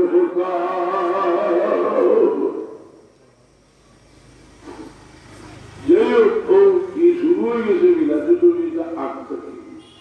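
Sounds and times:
man chanting a long note: 0.0 - 2.8.

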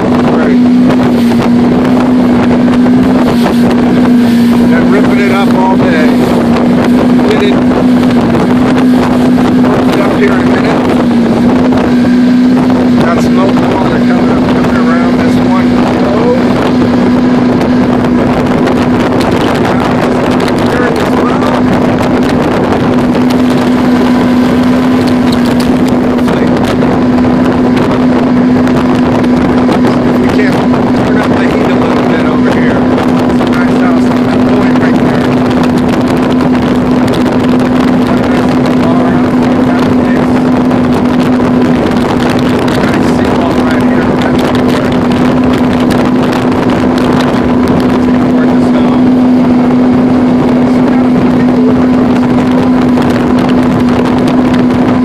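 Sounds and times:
motorboat engine drone: 0.0 - 55.0
water rushing past hull: 0.0 - 55.0.

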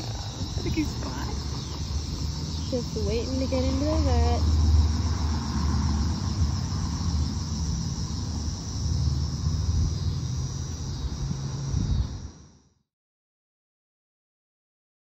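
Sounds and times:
insects chirring: 0.0 - 12.8.

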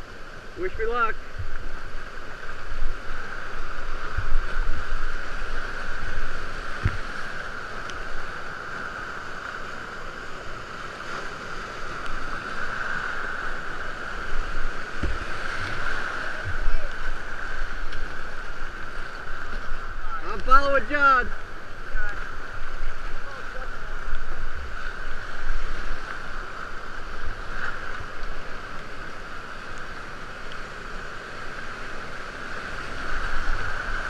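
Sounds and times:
whitewater rapids rushing: 0.0 - 34.0
dull knocks against boat: 15.0 - 15.3.

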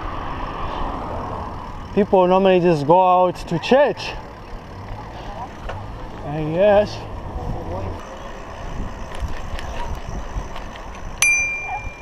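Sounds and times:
wind and road noise: 0.0 - 12.0
bicycle bell ding: 11.2 - 12.0.

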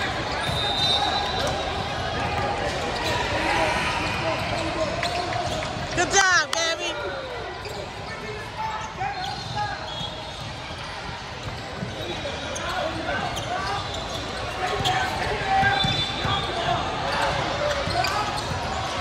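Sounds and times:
sneaker squeaks: 0.0 - 19.0
voices in a gym: 0.0 - 19.0.

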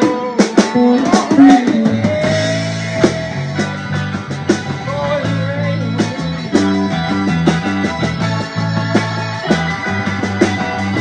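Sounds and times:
bass line: 0.0 - 11.0
drum kit: 0.0 - 11.0
electric guitar lead: 0.0 - 11.0.

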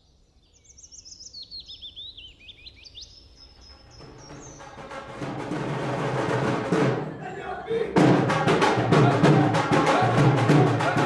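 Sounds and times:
birds chirping: 0.0 - 5.9
music: 3.5 - 11.0.

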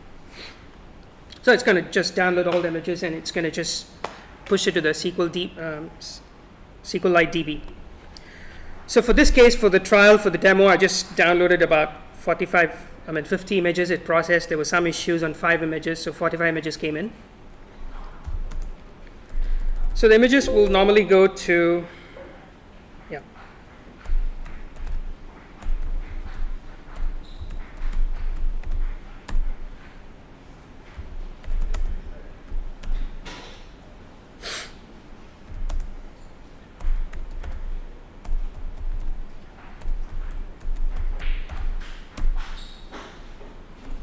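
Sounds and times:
laptop keyboard typing: 18.0 - 20.8, 24.0 - 30.0, 30.9 - 33.3, 35.4 - 42.7, 43.8 - 44.0.

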